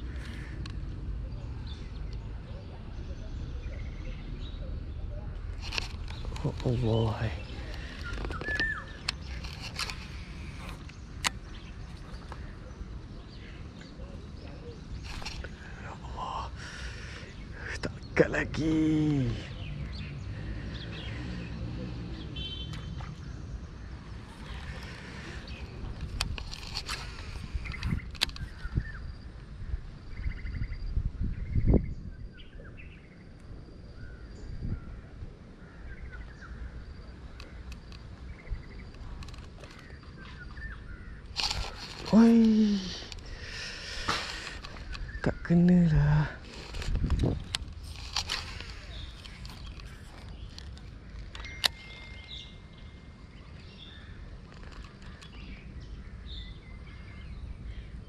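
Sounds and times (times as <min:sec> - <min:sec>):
birds chirping and calling: 0:00.0 - 0:58.0
wind rumble on microphone: 0:23.2 - 0:58.0
sharp clicks: 0:46.5 - 0:52.4.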